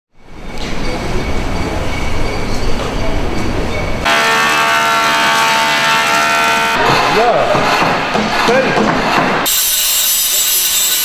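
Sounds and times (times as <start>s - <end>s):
wood thickness planer whining: 4.1s - 11.0s.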